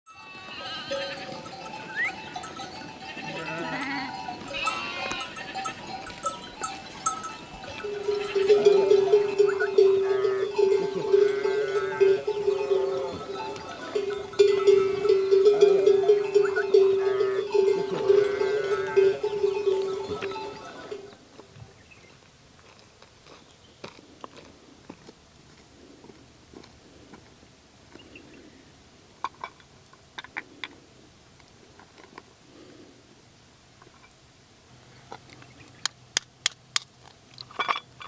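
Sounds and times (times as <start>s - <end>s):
sheep and goats bleating: 0.1s - 21.1s
livestock bell clanking: 0.1s - 21.2s.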